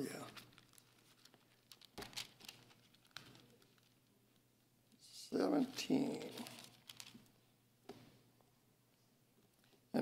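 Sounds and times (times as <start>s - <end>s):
pages being handled click: 0.3s - 3.9s, 6.1s - 7.3s.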